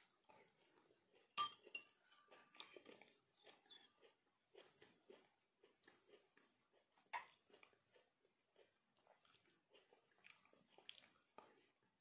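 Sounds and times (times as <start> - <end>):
metal spoon clinking on glass: 1.4 - 1.9.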